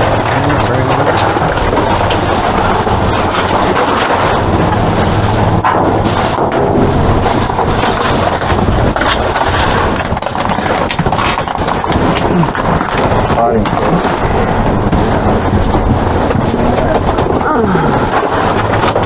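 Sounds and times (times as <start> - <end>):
plastic bags and bottles rustling: 0.0 - 19.0
steady low rumble: 0.0 - 19.0.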